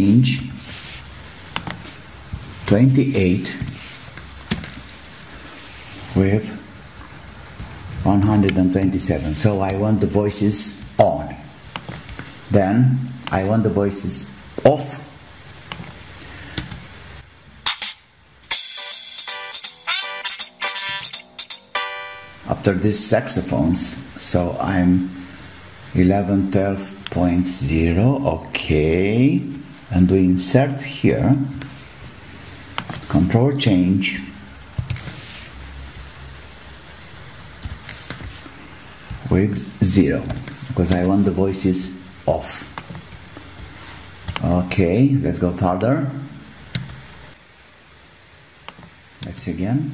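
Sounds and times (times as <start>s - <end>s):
microphone hiss and hum: 0.0s - 49.9s
midi song playing: 17.7s - 22.5s.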